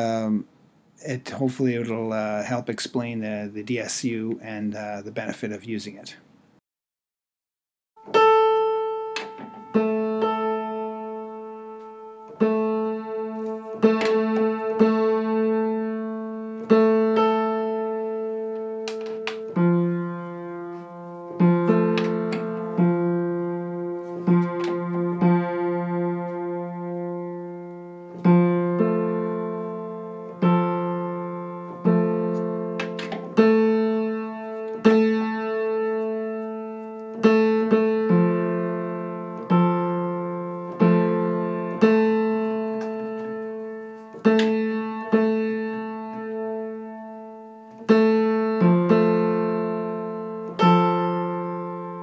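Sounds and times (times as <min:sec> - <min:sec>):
piano notes ringing: 0:08.0 - 0:52.0.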